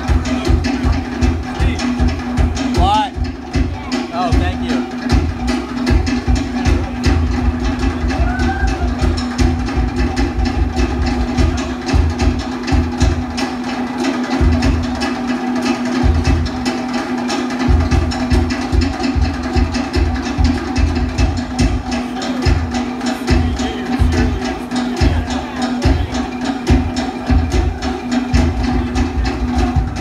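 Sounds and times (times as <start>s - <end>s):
deep drum beat: 0.0s - 30.0s
wooden log drums: 0.0s - 30.0s.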